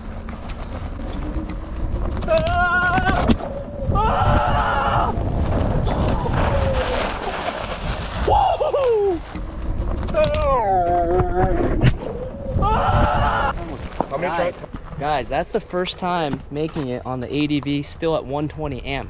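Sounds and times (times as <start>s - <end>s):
tyre rolling over dirt: 0.0s - 17.2s
wind on microphone: 0.8s - 14.1s.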